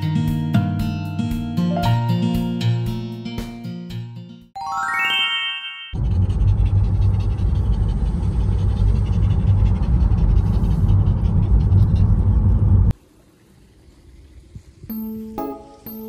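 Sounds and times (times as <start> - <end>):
car interior road rumble: 6.0 - 12.9.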